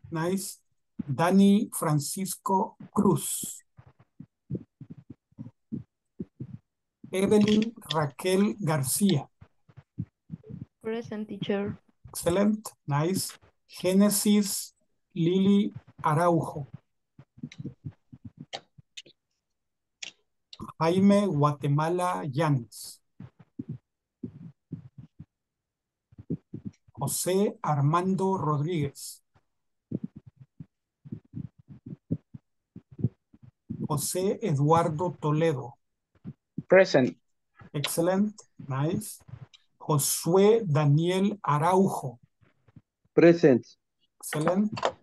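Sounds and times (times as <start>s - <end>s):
muffled voice on video call: 0.0s - 9.4s, 10.0s - 18.4s, 20.6s - 25.2s, 26.3s - 29.3s, 32.8s - 42.3s, 43.2s - 45.0s.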